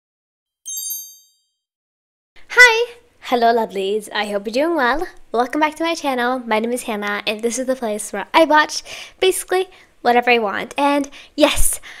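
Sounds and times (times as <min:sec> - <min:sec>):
bright high chime ding: 0:00.7 - 0:01.6.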